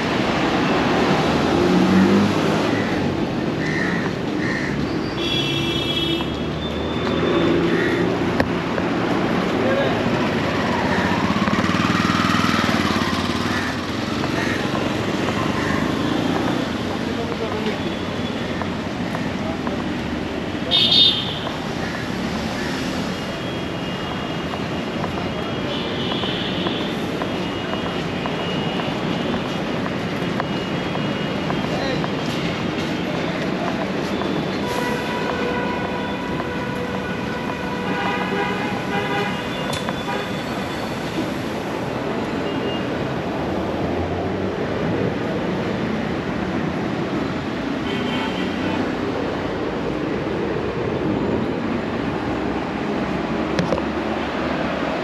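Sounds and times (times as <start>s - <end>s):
traffic noise: 0.0s - 55.0s
car horn blasts: 34.6s - 40.6s.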